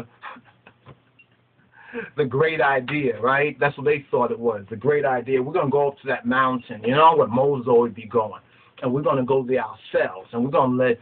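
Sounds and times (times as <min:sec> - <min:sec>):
man breathing: 0:01.6 - 0:02.2, 0:08.4 - 0:08.8.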